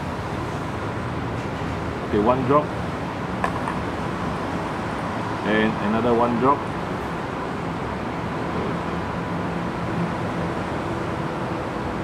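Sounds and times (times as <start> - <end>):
air conditioner hum and hiss: 0.0 - 12.0.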